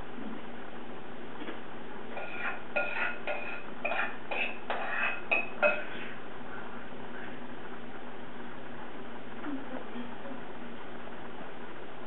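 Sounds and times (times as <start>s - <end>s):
kitchenware clinking: 2.1s - 6.1s.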